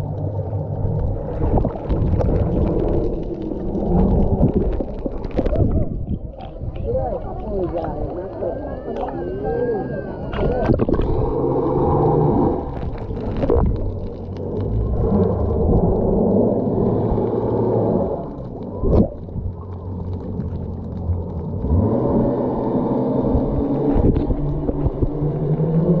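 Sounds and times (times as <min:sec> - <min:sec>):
underwater rumble: 0:00.0 - 0:26.0.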